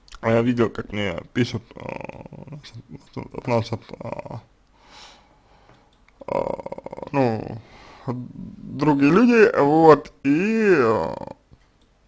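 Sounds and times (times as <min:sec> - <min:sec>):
man saying uh: 0:00.3 - 0:04.5, 0:06.2 - 0:11.4.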